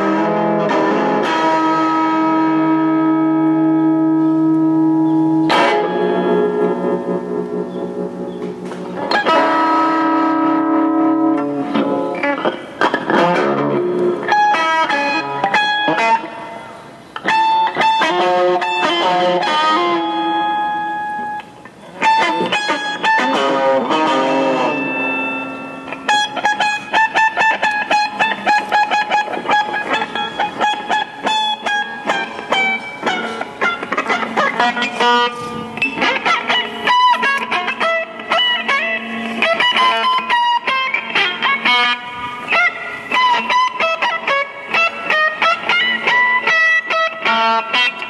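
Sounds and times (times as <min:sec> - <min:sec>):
electric guitar playing: 0:00.0 - 0:48.0.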